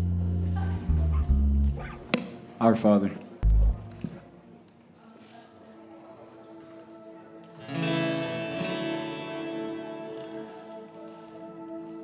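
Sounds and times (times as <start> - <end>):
deep bass notes: 0.0 - 2.1, 3.4 - 3.9.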